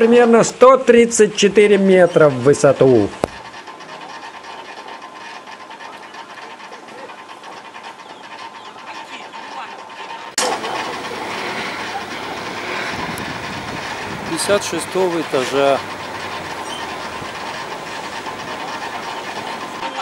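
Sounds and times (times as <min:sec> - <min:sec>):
descender running on cables: 0:02.7 - 0:09.0, 0:10.4 - 0:20.0.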